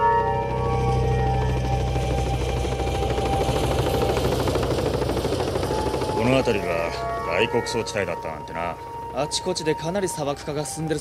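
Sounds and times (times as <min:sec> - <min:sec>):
synthesizer music: 0:00.0 - 0:03.2, 0:05.6 - 0:11.0
helicopter rotor chopping: 0:00.2 - 0:11.0.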